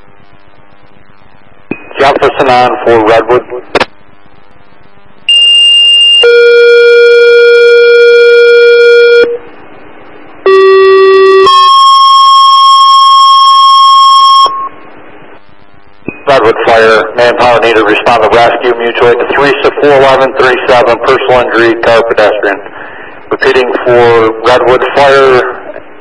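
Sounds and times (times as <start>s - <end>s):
radio hiss: 0.0s - 5.3s, 14.8s - 26.0s
two-tone paging tones: 10.5s - 14.7s.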